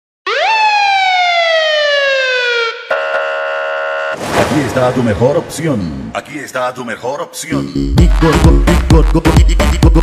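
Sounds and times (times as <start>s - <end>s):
electronic siren-like tone: 0.3s - 4.2s.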